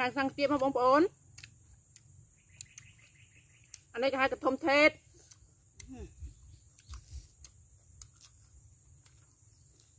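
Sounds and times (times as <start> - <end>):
faint bird chirping: 1.7 - 9.9.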